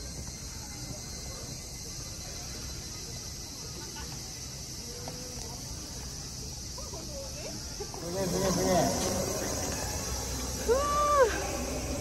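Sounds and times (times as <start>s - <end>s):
steady background hiss: 0.0s - 12.0s
drawn-out vocal call: 8.0s - 12.0s.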